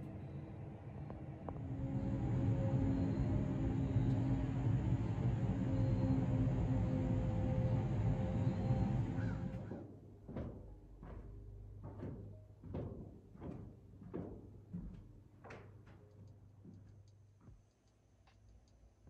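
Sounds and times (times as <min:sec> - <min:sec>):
eerie drone music: 0:00.0 - 0:09.8.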